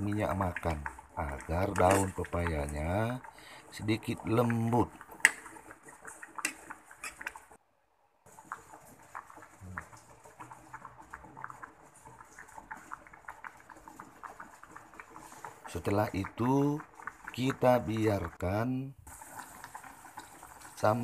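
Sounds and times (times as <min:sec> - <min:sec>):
pot bubbling and crackling: 0:00.0 - 0:07.6, 0:08.2 - 0:21.0.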